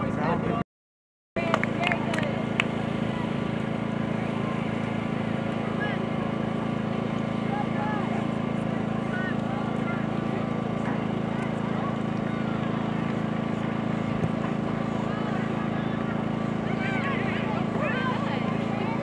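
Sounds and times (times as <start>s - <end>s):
low hum: 1.4s - 19.0s
distant shouts of players: 14.3s - 19.0s.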